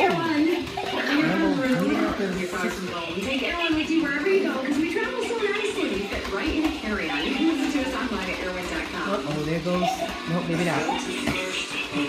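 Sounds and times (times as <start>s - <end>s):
background music: 0.0s - 12.0s
indistinct talking: 0.0s - 12.0s.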